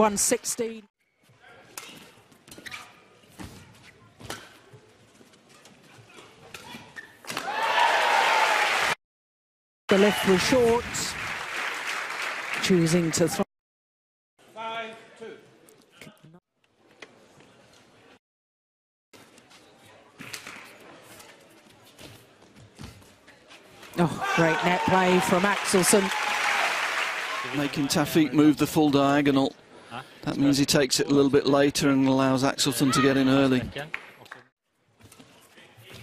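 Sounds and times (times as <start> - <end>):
crowd cheering and applause: 7.4 - 9.0, 9.9 - 13.4, 24.0 - 28.0.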